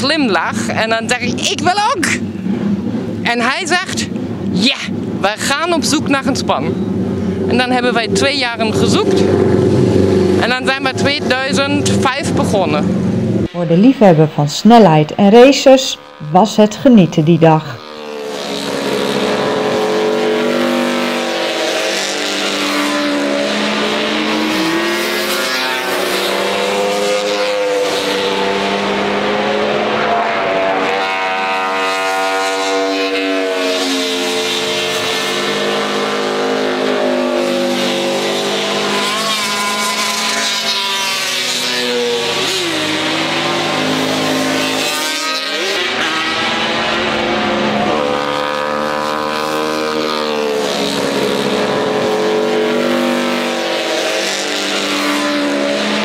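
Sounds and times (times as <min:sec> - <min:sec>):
racing motorcycles passing at speed: 0:00.0 - 0:14.3, 0:14.9 - 0:56.0.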